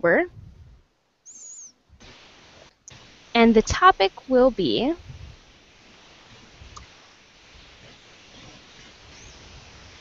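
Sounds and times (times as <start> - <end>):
microphone hiss and rumble: 0.0 - 10.0.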